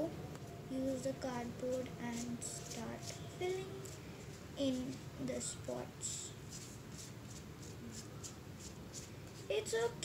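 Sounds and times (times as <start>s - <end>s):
cardboard scraping paint on paper: 6.4s - 9.8s.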